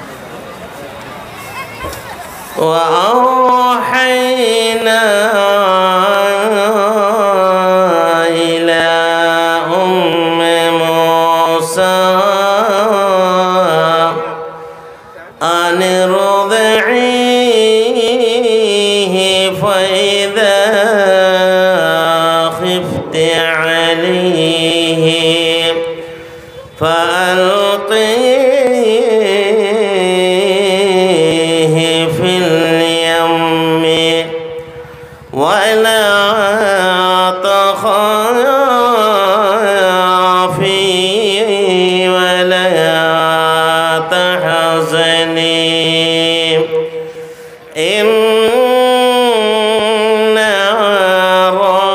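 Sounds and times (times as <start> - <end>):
man chanting into a microphone: 2.6 - 51.9.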